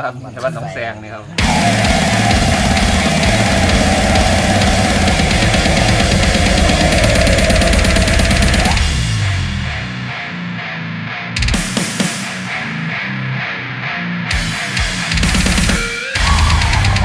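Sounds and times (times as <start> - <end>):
death metal music: 1.4 - 17.0.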